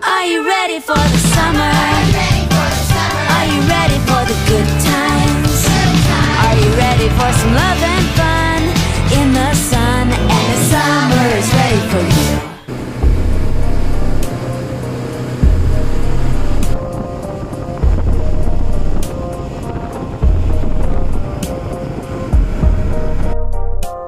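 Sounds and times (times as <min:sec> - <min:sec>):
background music: 0:00.0 - 0:24.0
boat engine rumble: 0:01.1 - 0:23.8
wind buffeting: 0:12.7 - 0:23.6.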